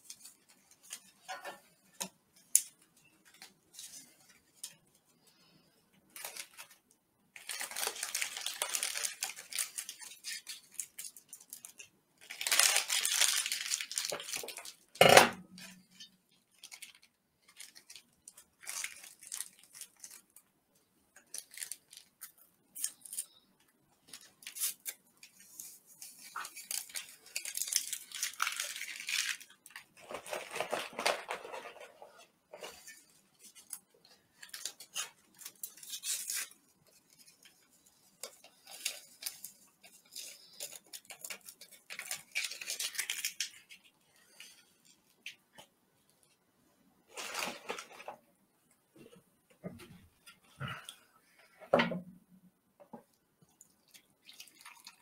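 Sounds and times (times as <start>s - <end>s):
plastic packaging crinkling: 6.1s - 6.8s, 7.4s - 20.5s, 21.2s - 46.4s, 47.1s - 48.3s, 53.5s - 55.0s.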